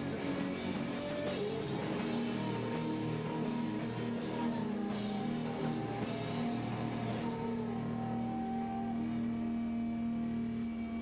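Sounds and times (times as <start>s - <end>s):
electric guitars droning chord: 0.0s - 11.0s
guitar strumming: 0.0s - 11.0s.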